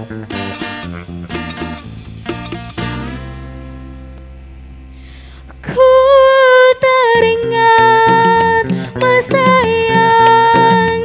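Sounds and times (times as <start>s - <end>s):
low bass note ringing: 0.0s - 5.6s
bass and guitar accompaniment: 0.0s - 11.0s.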